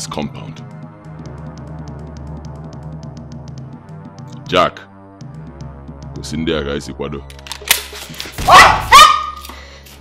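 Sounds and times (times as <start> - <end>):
film music score: 0.0 - 10.0.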